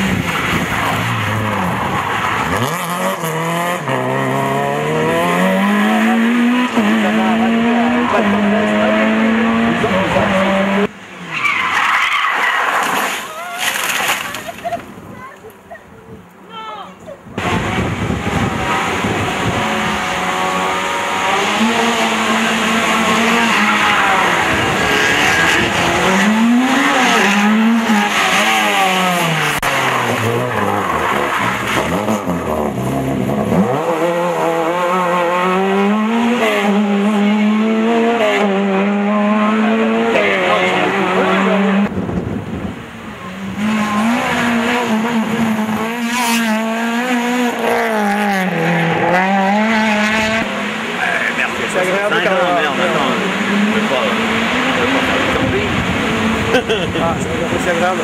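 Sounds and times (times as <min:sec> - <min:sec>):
rally car engines revving: 0:00.0 - 0:15.7, 0:17.2 - 0:58.0.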